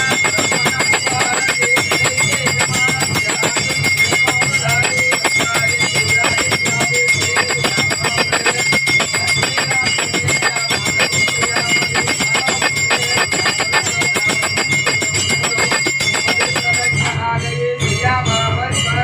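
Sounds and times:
bells clanging rapidly: 0:00.0 - 0:19.0
high ringing tone: 0:00.0 - 0:19.0.

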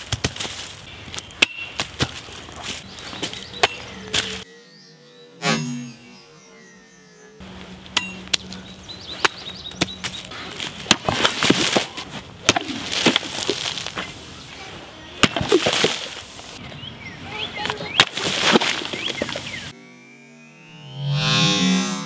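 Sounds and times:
cleaver chopping impacts: 0:00.0 - 0:04.4, 0:09.2 - 0:14.1, 0:15.2 - 0:16.6, 0:17.6 - 0:19.7.

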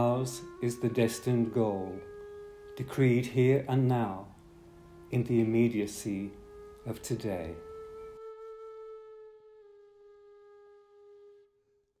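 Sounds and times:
faint flute note: 0:00.0 - 0:11.7.

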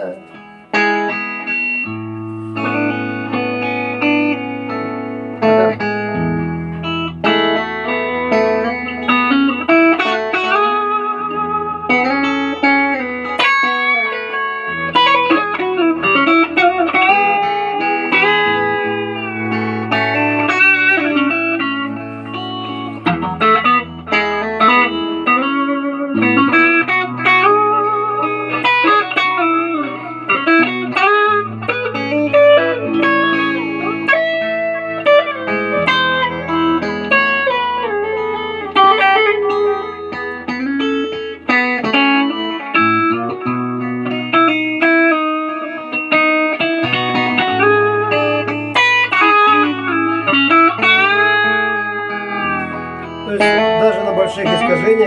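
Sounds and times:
electric guitar lead line: 0:00.0 - 0:55.0
held bass notes: 0:46.7 - 0:55.0.

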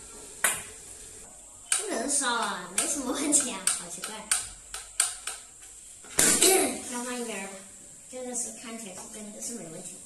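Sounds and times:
sharp plastic clicks: 0:01.7 - 0:05.5.

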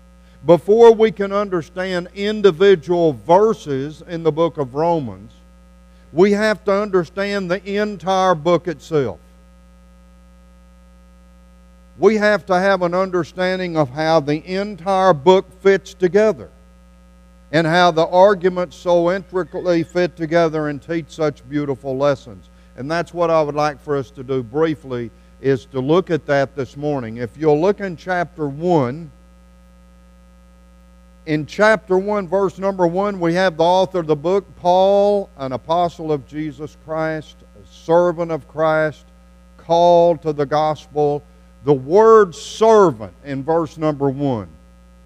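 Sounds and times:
electrical mains hum: 0:00.0 - 0:45.0
man speaking: 0:00.4 - 0:05.4, 0:06.1 - 0:09.2, 0:12.0 - 0:16.5, 0:17.5 - 0:29.1, 0:31.3 - 0:39.0, 0:39.6 - 0:44.6.

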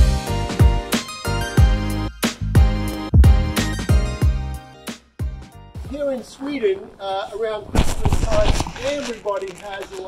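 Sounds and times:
man talking: 0:05.8 - 0:10.0
rumbling crackling noise burst: 0:07.7 - 0:10.0.

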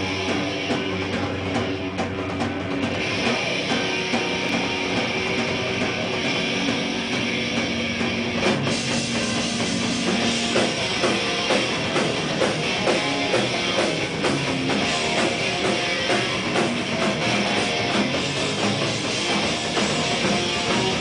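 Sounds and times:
heavy metal band playing live: 0:00.0 - 0:21.0.

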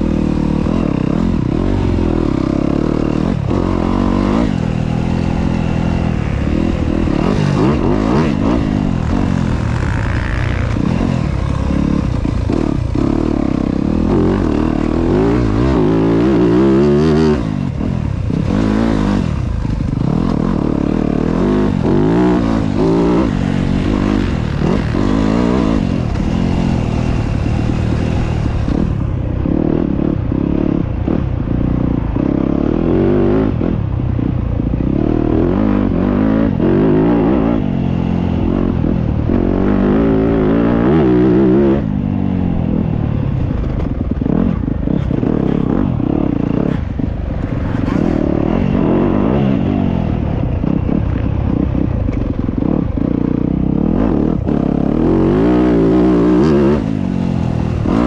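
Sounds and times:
dirt bike engine revving: 0:00.0 - 0:58.0.

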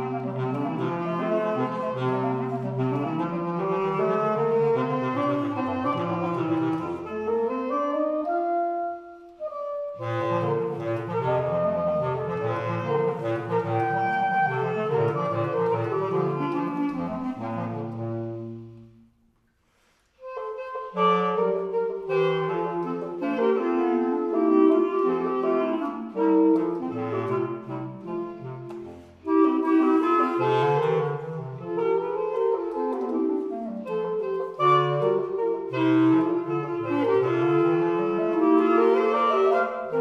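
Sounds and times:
basset horn trio playing: 0:00.0 - 0:19.0, 0:20.2 - 0:40.0.

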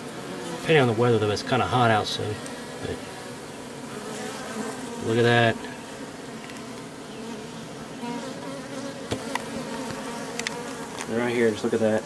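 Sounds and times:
bees buzzing: 0:00.0 - 0:12.0.

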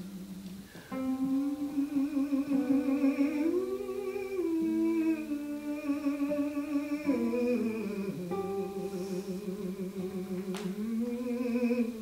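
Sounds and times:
man humming a slow melody: 0:00.0 - 0:12.0.

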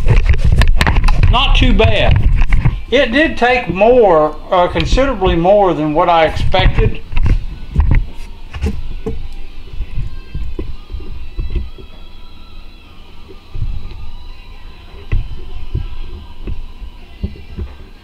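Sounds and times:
faint steady hum: 0:00.0 - 0:18.0.

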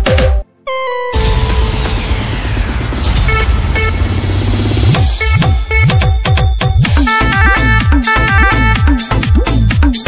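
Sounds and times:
dj remix music: 0:00.9 - 0:10.0
synth stabs: 0:01.1 - 0:07.5
rapid low pulses: 0:01.2 - 0:06.3.

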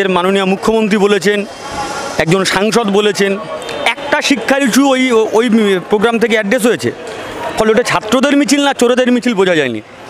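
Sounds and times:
man talking: 0:00.0 - 0:01.6, 0:02.2 - 0:09.9
street traffic noise: 0:00.0 - 0:10.0.

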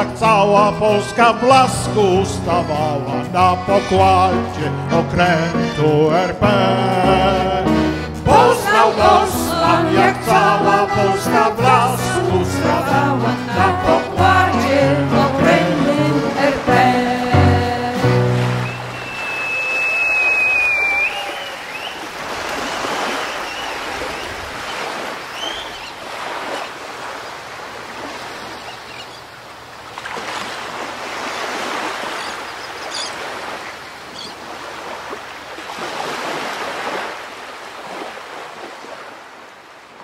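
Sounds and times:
sea waves breaking: 0:07.9 - 0:40.0
music chord: 0:12.9 - 0:18.9
high whistling tone: 0:18.6 - 0:24.3.

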